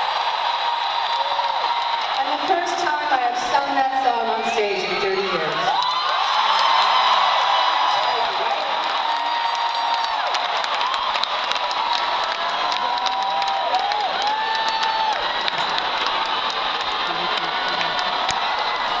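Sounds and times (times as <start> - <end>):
crowd cheering: 0.0 - 19.0
scattered clapping: 5.7 - 19.0.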